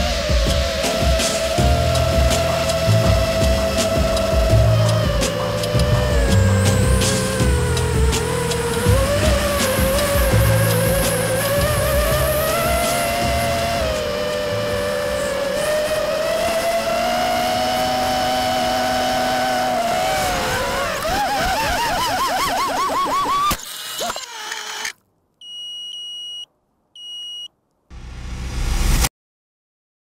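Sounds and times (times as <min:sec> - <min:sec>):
drone motors whining: 0:00.0 - 0:25.0
short high beeps: 0:25.4 - 0:27.5.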